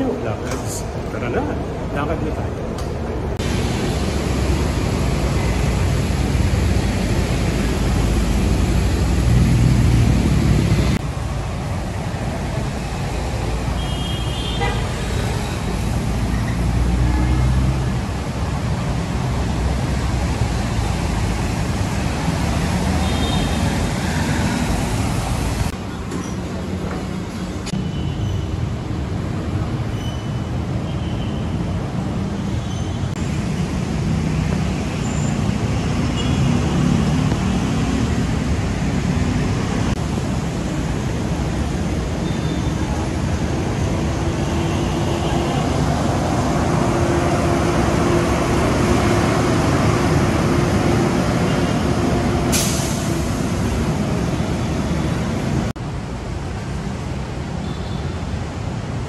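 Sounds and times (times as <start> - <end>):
heavy traffic rumble: 0.0 - 59.0
short sharp hiss: 52.5 - 53.3.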